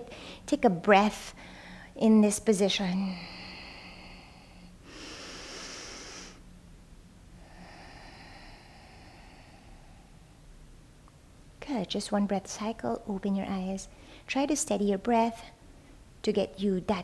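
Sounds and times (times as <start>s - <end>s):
woman breathing: 0.0s - 0.5s, 1.3s - 2.0s, 2.7s - 6.4s, 7.3s - 10.5s, 13.9s - 14.3s.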